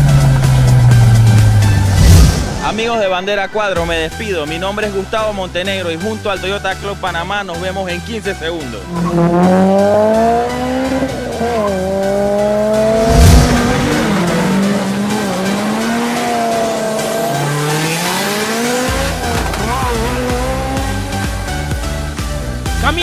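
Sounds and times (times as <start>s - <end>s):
background music: 0.0s - 23.0s
tires squealing: 8.8s - 21.6s
car engine revving high: 8.8s - 22.0s
loud thump: 13.0s - 14.6s.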